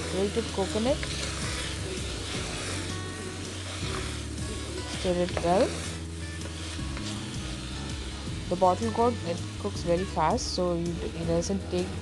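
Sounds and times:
food sizzling while stirred: 0.0s - 12.0s
soft background music: 0.0s - 12.0s
wooden spatula stirring in pot: 0.0s - 12.0s.

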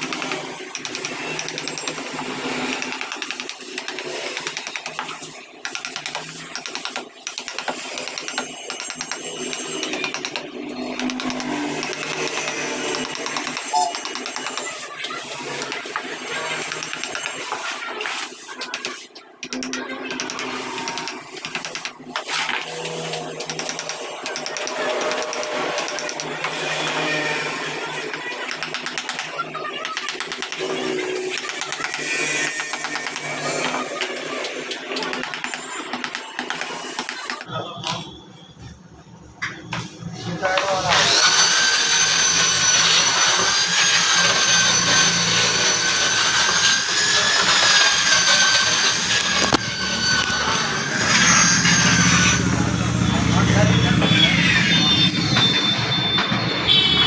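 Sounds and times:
electric angle grinder running: 40.9s - 52.4s.

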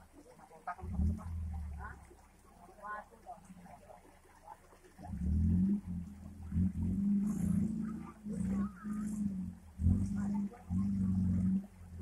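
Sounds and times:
off-road engine revving: 0.6s - 2.4s, 5.0s - 12.0s.

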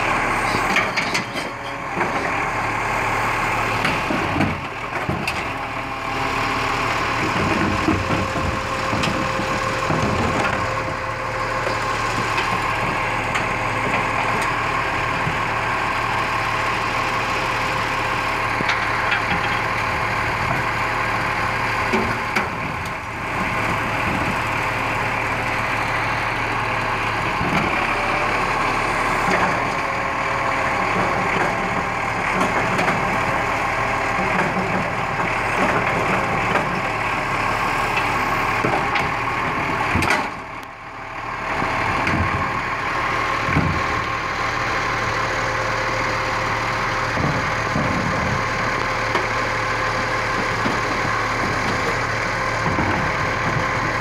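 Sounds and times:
garbage truck engine idling: 0.0s - 54.0s.

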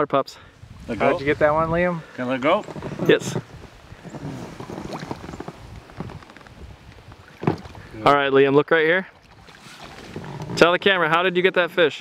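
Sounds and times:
small irregular knocks: 4.0s - 7.8s
light water splashing: 9.0s - 10.7s.

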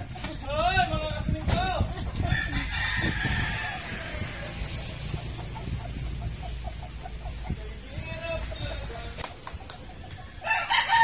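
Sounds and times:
chickens clucking: 0.0s - 11.0s
rooster crowing: 2.3s - 4.6s, 10.4s - 11.0s.

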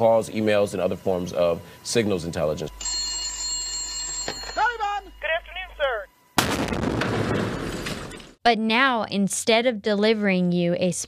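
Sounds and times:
electronic hum with high tones: 0.0s - 6.7s
radio voice: 4.6s - 6.1s
loud explosion: 6.4s - 8.3s.

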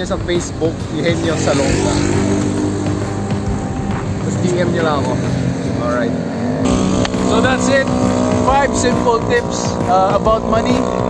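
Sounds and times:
background music: 0.0s - 11.0s
cars passing: 0.0s - 11.0s
motorcycles passing: 0.0s - 11.0s.

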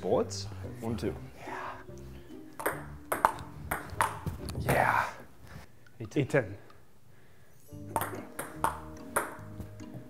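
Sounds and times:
table tennis ball clicking: 2.6s - 4.2s, 7.9s - 9.5s.

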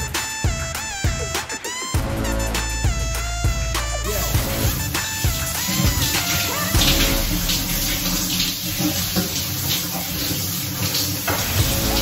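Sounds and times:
shower water spraying and splashing: 4.1s - 12.0s.

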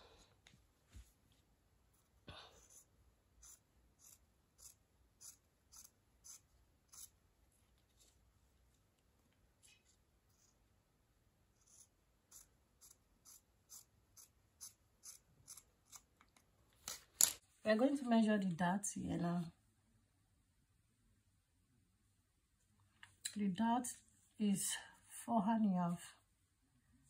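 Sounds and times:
scissors snipping fabric: 11.6s - 16.2s.

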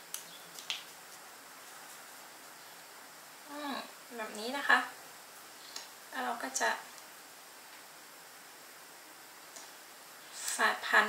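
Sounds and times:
sharp clicks from handling flower sprigs: 0.1s - 2.1s.

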